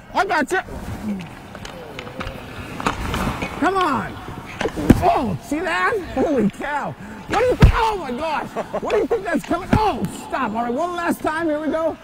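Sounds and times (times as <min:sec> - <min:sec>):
hockey stick hitting puck on ice: 0:01.2 - 0:06.6, 0:07.3 - 0:10.2.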